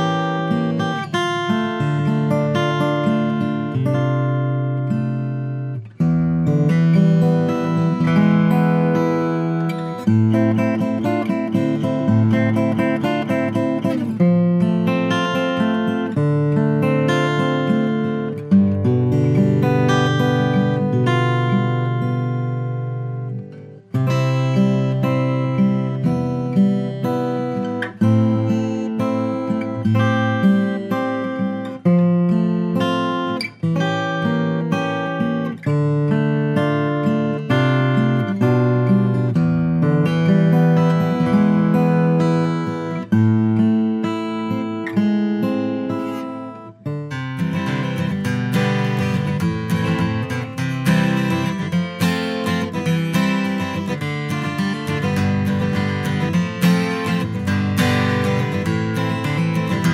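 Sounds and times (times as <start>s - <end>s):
acoustic guitar chords: 0.0s - 59.9s.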